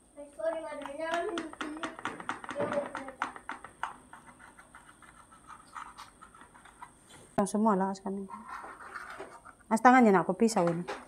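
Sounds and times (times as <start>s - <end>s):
sharp clicks and taps on plate: 0.4s - 5.2s.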